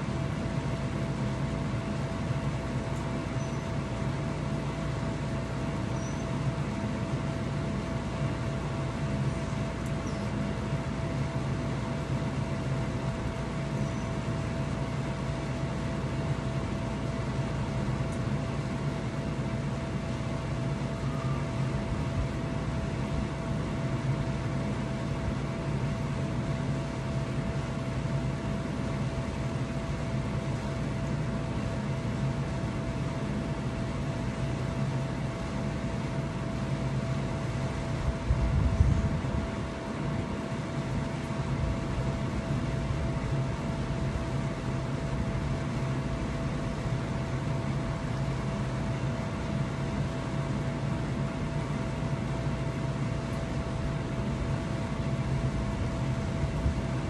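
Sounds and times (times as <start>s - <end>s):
chiller unit humming: 0.0s - 57.0s
thin constant whine: 0.0s - 57.0s.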